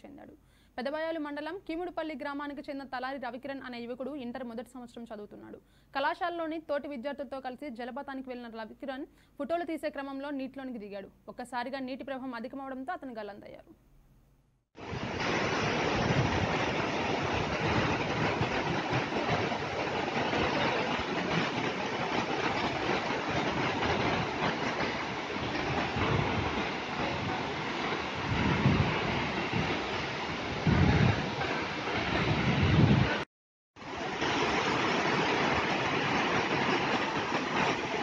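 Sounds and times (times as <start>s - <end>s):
waterfall rushing: 14.8s - 33.2s, 33.8s - 38.0s.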